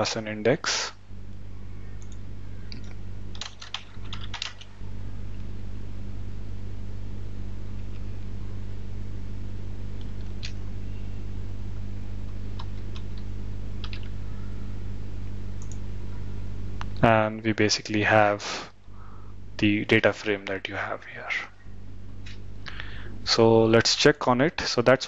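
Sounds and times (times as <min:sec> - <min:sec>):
steady low hum: 0:00.0 - 0:25.0
keyboard typing: 0:02.0 - 0:04.8, 0:12.6 - 0:14.1.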